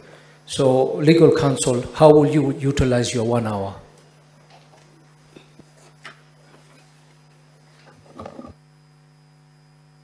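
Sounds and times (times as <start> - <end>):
low mains hum: 0.0 - 10.0.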